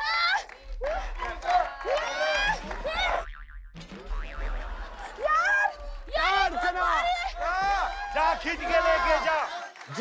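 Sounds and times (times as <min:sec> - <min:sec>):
people shouting and whooping: 0:00.0 - 0:03.2, 0:04.9 - 0:10.0.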